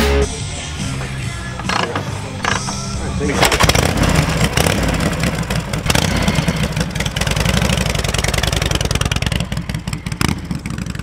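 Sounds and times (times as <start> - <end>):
music playing: 0.0 - 4.9
motorcycle engine turning over: 1.0 - 11.0.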